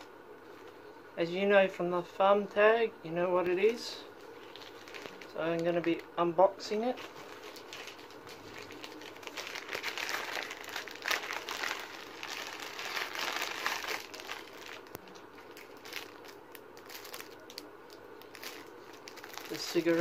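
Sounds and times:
plastic packaging crinkling: 0:03.6 - 0:06.1, 0:06.8 - 0:20.0.

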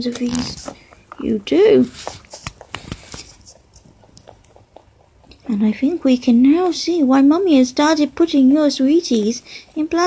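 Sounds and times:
rabbit crunching treats: 0:00.0 - 0:07.8.

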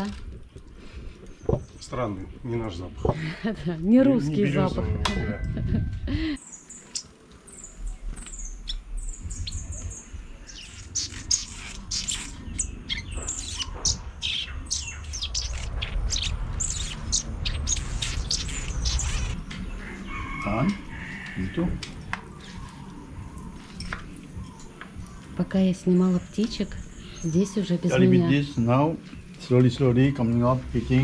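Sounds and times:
birds chirping: 0:00.0 - 0:31.0.

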